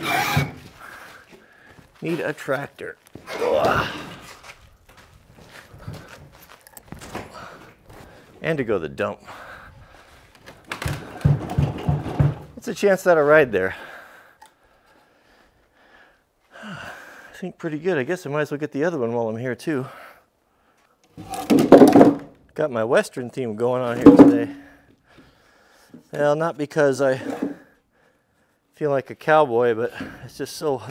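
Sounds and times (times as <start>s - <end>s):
knock: 24.0s - 24.4s.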